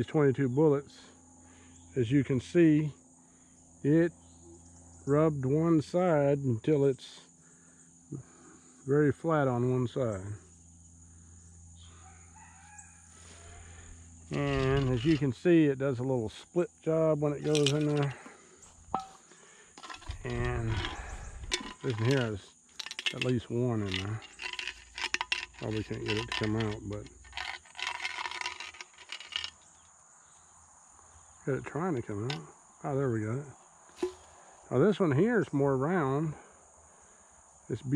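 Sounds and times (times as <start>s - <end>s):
crickets chirring: 0.0s - 37.9s
high-pitched insect drone: 1.1s - 35.4s
bullet rattling inside shaken metal can: 14.3s - 15.4s, 17.4s - 18.3s, 19.8s - 29.6s, 34.0s - 34.2s.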